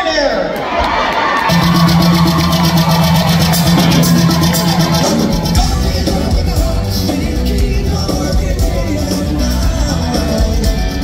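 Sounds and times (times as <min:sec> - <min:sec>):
crowd noise in a hall: 0:00.0 - 0:11.0
live rock band: 0:01.4 - 0:11.0.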